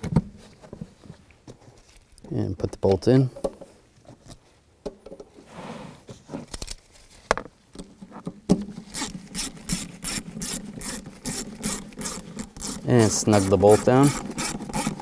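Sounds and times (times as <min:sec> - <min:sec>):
hand ratchet clicking: 0:09.0 - 0:15.0.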